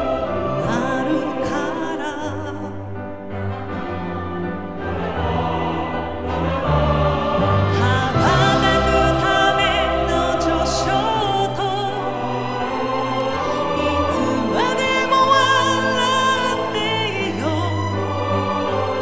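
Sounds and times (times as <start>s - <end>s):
orchestra playing slow ballad: 0.0s - 19.0s
woman singing: 0.5s - 2.9s, 7.7s - 12.2s, 13.5s - 18.0s.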